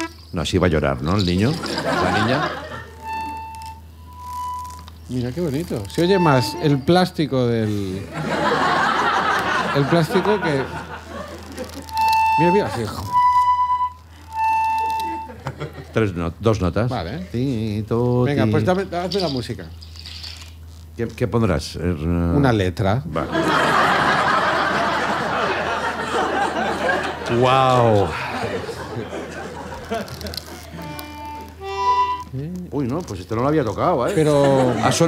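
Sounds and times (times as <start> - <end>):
toy accordion held notes: 0.0 - 7.2, 11.2 - 15.6, 29.6 - 33.4
person speaking: 5.1 - 8.1, 11.7 - 13.2, 27.2 - 35.0
toy accordion clicks: 11.4 - 13.6, 14.3 - 15.3, 29.8 - 33.2.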